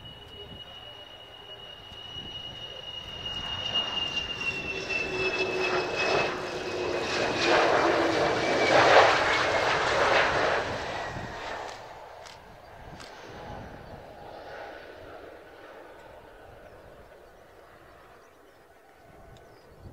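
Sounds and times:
high falling jet whine: 0.0s - 12.1s
jet aircraft passing low: 0.0s - 19.9s.

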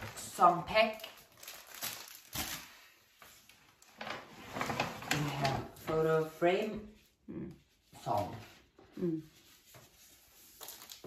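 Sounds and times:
packages rustling in paper bag: 0.0s - 5.9s, 9.6s - 11.0s.

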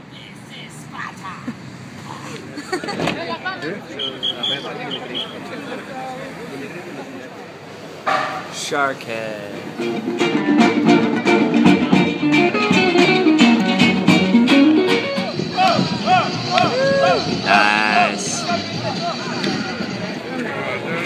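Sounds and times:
acoustic guitars strumming: 9.6s - 16.6s.

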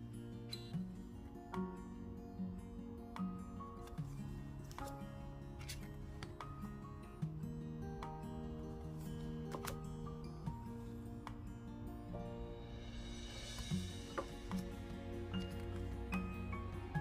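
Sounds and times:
gentle instrumental music: 0.0s - 17.0s.

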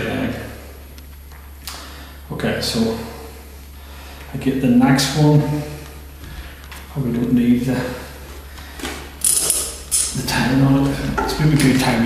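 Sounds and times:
equipment clicks and rattles: 8.8s - 10.2s.

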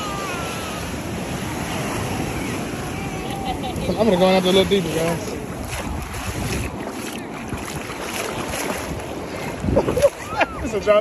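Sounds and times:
person wading through surf: 0.0s - 11.0s
shallow seawater sloshing: 0.0s - 11.0s
wind rumbling on microphone: 0.0s - 11.0s.

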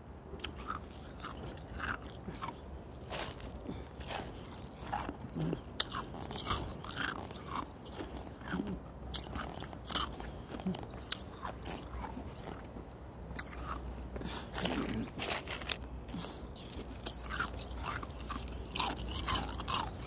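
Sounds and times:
person crunching ice: 0.4s - 12.7s, 13.4s - 20.0s.

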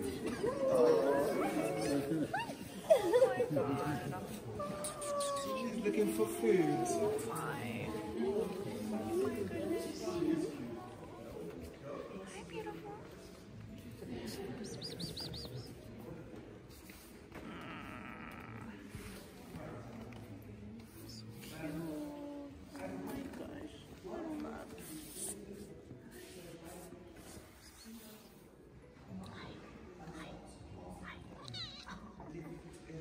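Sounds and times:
cat making quiet sounds: 4.3s - 7.8s.

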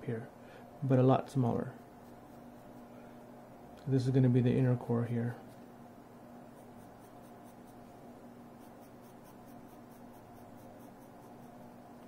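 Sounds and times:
low room hum: 0.0s - 12.0s
pencil scratching on paper: 6.5s - 8.0s, 8.6s - 11.8s.

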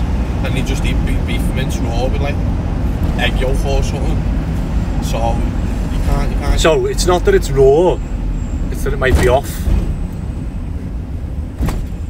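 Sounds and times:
van engine rumble and road noise: 0.0s - 12.0s.

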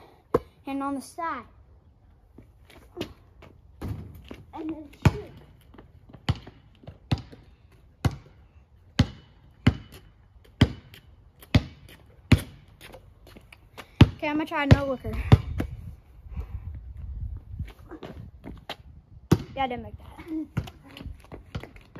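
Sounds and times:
basketball bouncing on pavement: 0.3s - 0.8s, 2.4s - 15.9s, 17.3s - 21.9s.

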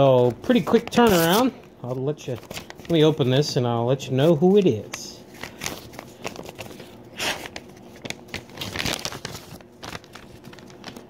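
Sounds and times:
paper crinkling and rustling: 0.2s - 3.5s, 4.2s - 11.0s
envelope paper tearing: 5.4s - 11.0s.

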